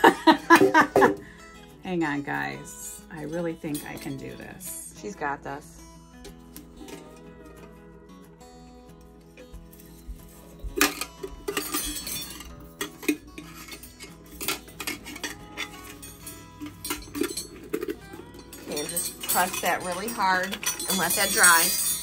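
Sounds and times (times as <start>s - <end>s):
metal wind chime clinking: 10.8s - 22.0s.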